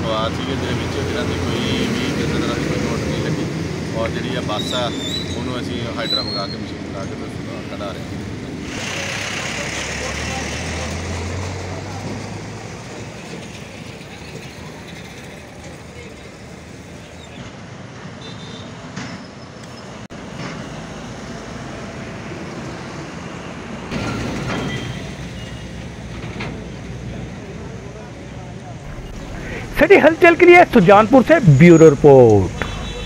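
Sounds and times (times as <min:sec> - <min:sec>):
vehicles passing: 0:00.0 - 0:33.0.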